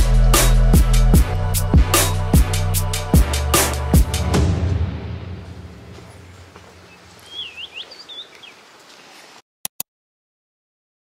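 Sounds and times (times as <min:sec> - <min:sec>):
background music: 0:00.0 - 0:06.0
faint outdoor ambience: 0:04.8 - 0:09.4
bird whistling: 0:06.8 - 0:08.6.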